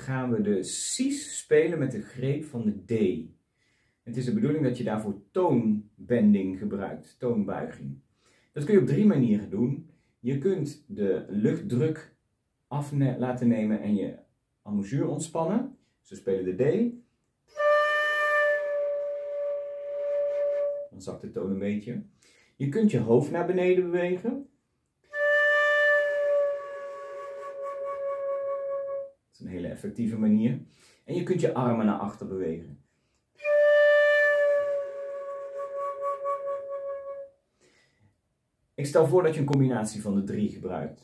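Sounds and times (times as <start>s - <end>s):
flute playing long note: 17.5s - 20.9s, 25.1s - 29.1s, 33.4s - 37.3s.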